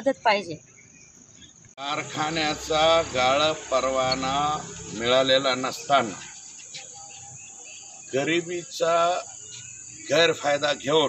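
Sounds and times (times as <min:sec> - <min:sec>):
crickets chirping: 0:00.0 - 0:11.0
man speaking: 0:01.8 - 0:06.3, 0:10.1 - 0:11.0.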